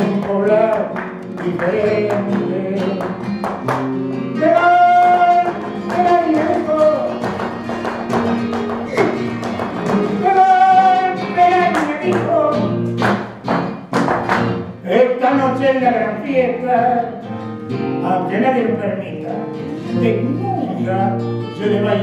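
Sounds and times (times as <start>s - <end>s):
person singing: 0.0s - 3.2s, 4.2s - 7.6s, 8.8s - 12.8s, 18.0s - 22.0s
acoustic guitar: 0.0s - 22.0s.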